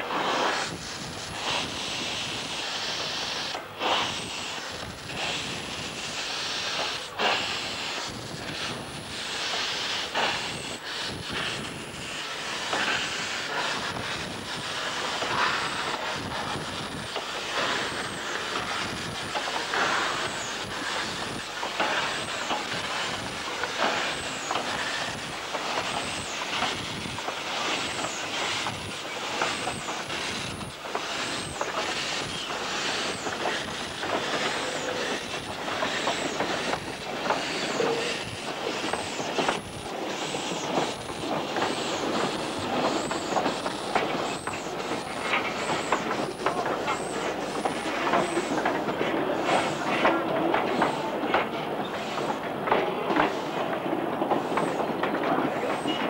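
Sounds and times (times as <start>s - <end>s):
steam hissing: 0.0s - 56.0s
steam locomotive exhaust chuffs: 0.0s - 56.0s.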